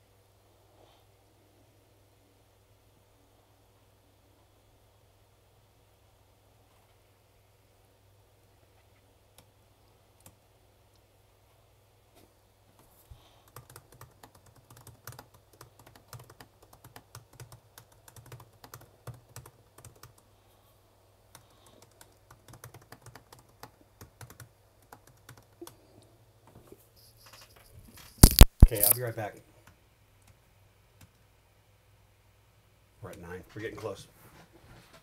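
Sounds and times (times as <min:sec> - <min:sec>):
typing on computer keyboard: 0:13.5 - 0:20.2, 0:21.3 - 0:25.8, 0:27.1 - 0:29.0.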